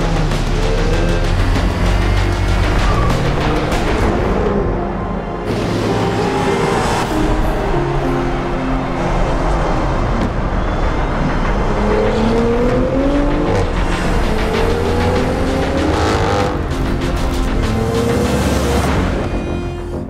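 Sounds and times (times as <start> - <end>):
car engine revving: 0.0 - 20.0
dramatic soundtrack music: 0.0 - 20.0.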